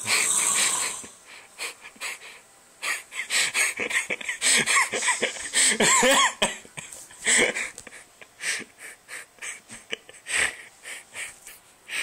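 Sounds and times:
wheezing laughter: 0.0 - 12.0.

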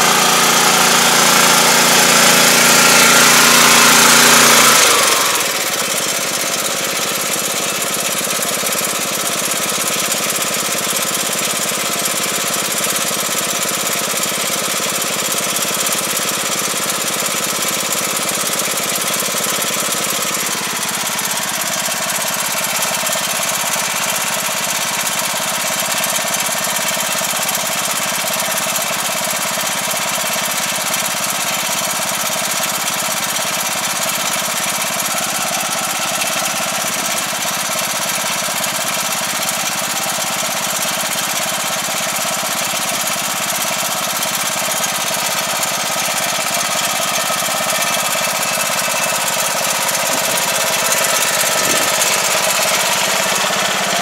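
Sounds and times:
rice transplanter engine running: 0.0 - 54.0.

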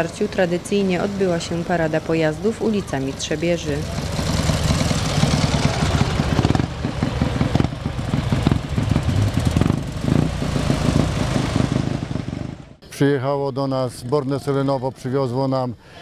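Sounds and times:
vehicle engines rumbling past: 0.0 - 12.8.

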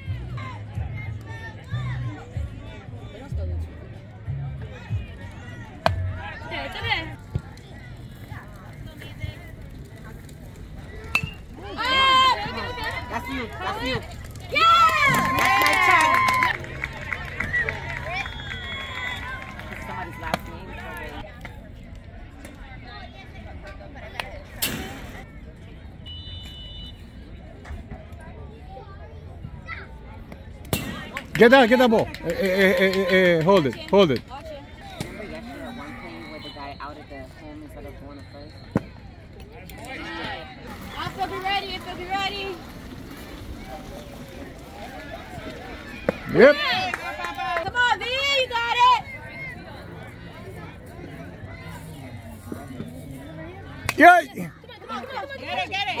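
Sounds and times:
metal bat hitting ball: 11.1 - 11.4.

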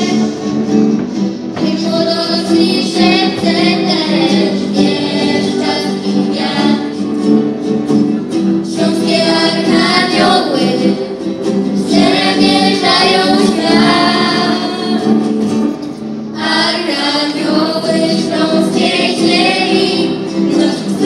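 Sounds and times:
group of young singers singing: 0.0 - 0.6, 1.5 - 7.4, 8.6 - 15.5, 16.3 - 21.0
acoustic guitars: 0.0 - 21.0.

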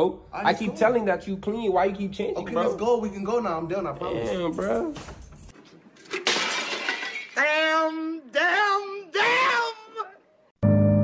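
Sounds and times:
glass shattering crash: 5.1 - 7.4.

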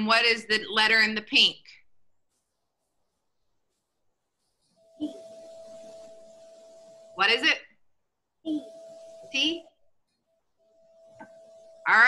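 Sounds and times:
microphone hum with hiss: 4.8 - 7.6, 8.5 - 9.8.

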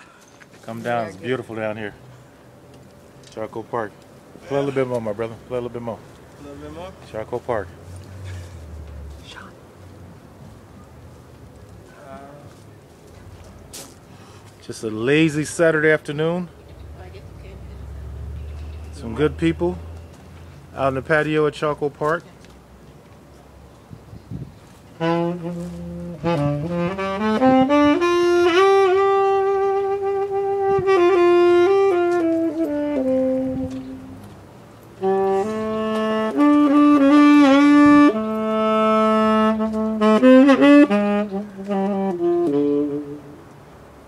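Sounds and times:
solo saxophone: 24.9 - 34.4, 35.0 - 43.5.

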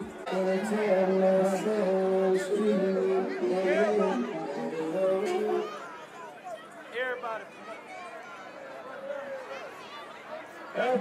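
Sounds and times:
crowd chatter: 0.0 - 11.0
people talking close by: 0.0 - 11.0.

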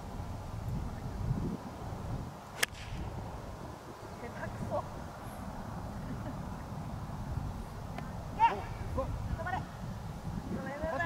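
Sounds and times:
golf club striking ball: 2.6 - 3.2.

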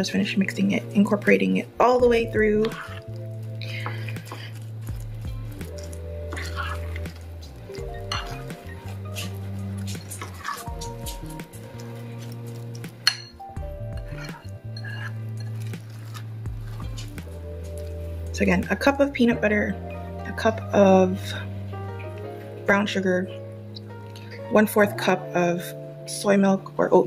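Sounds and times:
background music with bass line: 0.0 - 26.2
spoon scraping a glass bowl: 5.6 - 16.2.

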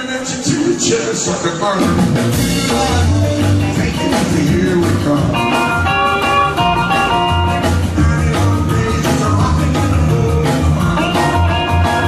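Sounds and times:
walking bass: 0.3 - 12.0
steady drum beat: 1.8 - 12.0.

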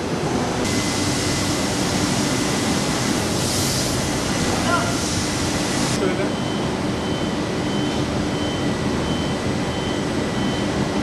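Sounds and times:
machinery hiss and rumble: 0.0 - 11.0.

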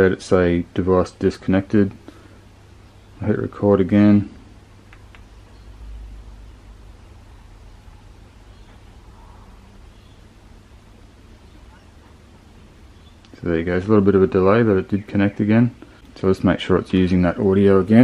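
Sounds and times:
faint hiss: 0.0 - 18.0
steady low hum: 0.0 - 18.0.

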